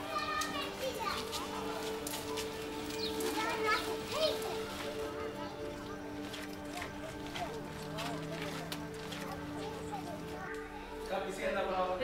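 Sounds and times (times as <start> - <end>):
children calling and shouting: 0.0 - 11.7
music of held low notes: 0.0 - 12.0.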